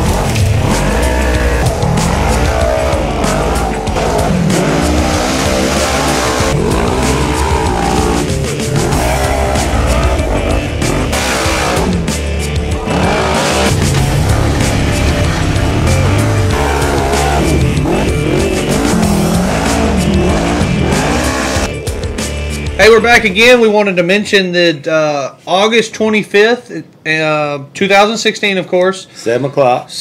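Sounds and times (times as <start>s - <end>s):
racing engines revving: 0.0s - 21.9s
music track: 0.0s - 24.6s.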